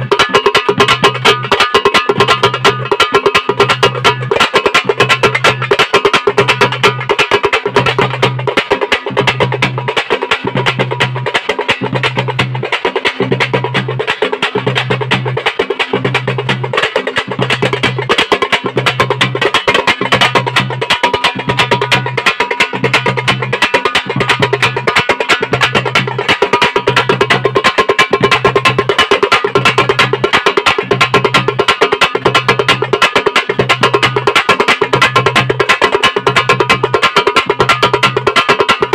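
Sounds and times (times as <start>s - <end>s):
hand drums fast rhythm: 0.0s - 38.9s.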